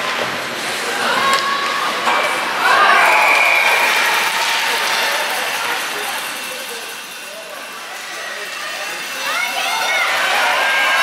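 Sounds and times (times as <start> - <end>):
crowd cheering and clapping: 1.3 - 6.0.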